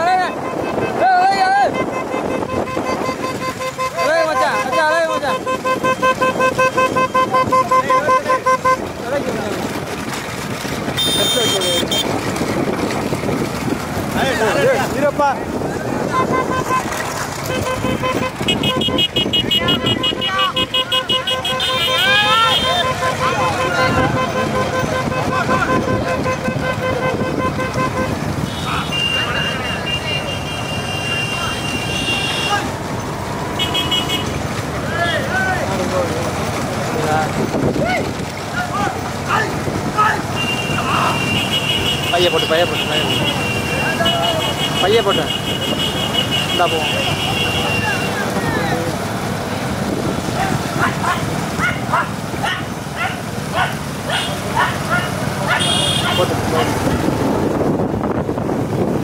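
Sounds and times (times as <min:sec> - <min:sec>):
men shouting: 0:00.0 - 0:02.0, 0:19.5 - 0:26.1, 0:31.1 - 0:32.8, 0:34.8 - 0:35.9, 0:37.7 - 0:49.1, 0:50.2 - 0:57.0
motorcycle horns honking: 0:00.0 - 0:13.0, 0:15.8 - 0:36.6, 0:38.7 - 0:57.3
motorcycle engines running: 0:00.0 - 0:59.0.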